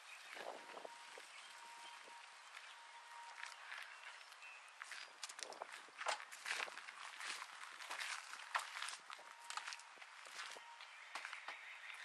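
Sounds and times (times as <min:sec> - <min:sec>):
footsteps on asphalt: 0:00.2 - 0:12.0.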